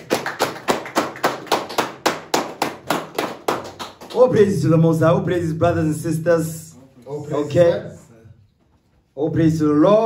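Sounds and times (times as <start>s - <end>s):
person clapping hands: 0.0s - 4.3s.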